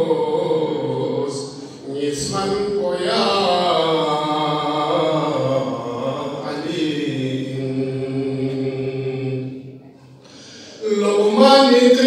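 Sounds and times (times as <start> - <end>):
man chanting devotional melody: 0.0 - 9.4, 10.8 - 12.0.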